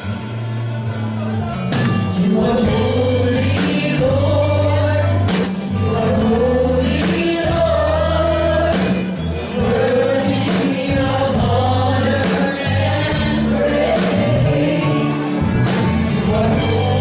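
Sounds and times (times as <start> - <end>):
amplified musical accompaniment: 0.0 - 17.0
women singing gospel: 2.2 - 17.0.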